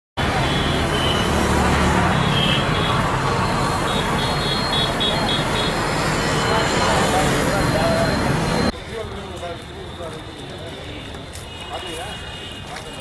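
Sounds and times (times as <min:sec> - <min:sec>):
street traffic noise: 0:00.2 - 0:13.0.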